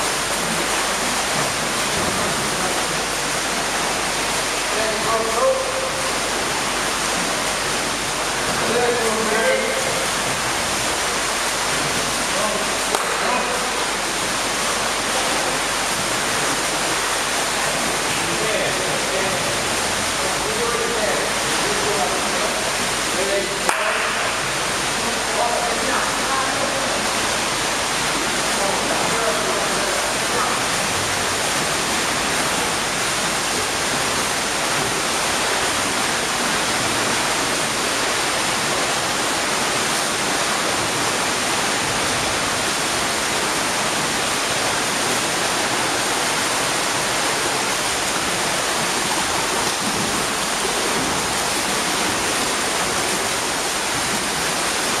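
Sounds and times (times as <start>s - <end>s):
swimmers splashing: 0.0s - 55.0s.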